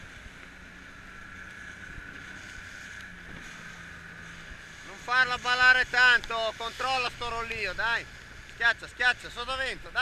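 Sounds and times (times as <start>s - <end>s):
outboard motor running: 0.0s - 10.0s
water noise: 0.0s - 10.0s
wind: 0.0s - 10.0s.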